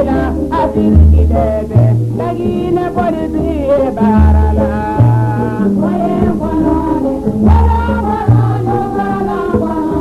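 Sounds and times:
long low bass notes: 0.0s - 9.9s
group of voices singing: 0.0s - 10.0s
instrumental ensemble: 0.0s - 10.0s.

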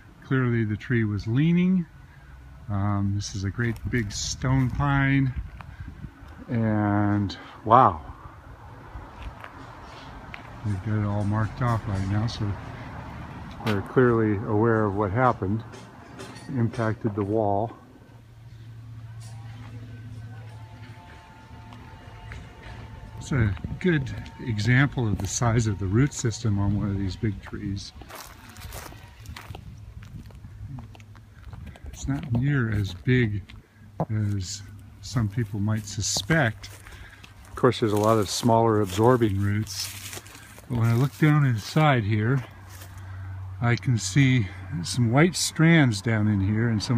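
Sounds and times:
low rumble on microphone: 16.6s - 41.8s
footsteps on dry soil: 18.6s - 43.3s.

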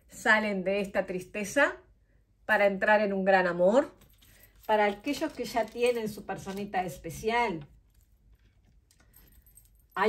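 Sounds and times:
metal chain bracelet jingling: 3.9s - 7.0s, 7.8s - 10.0s
tarot cards being handled: 3.9s - 9.5s.

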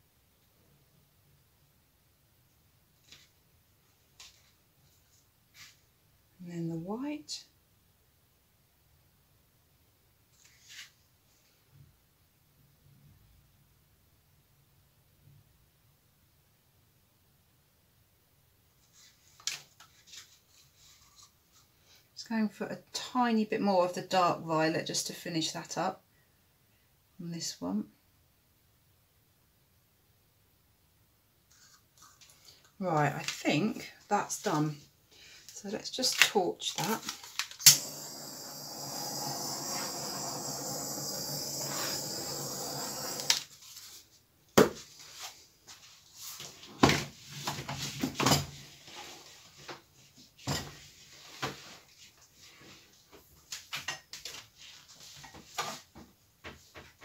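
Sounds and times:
butane torch hissing: 37.6s - 43.4s.

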